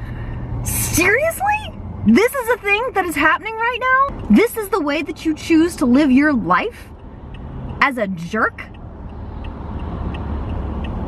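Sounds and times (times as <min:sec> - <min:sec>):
road and tyre noise in car: 0:00.0 - 0:11.0.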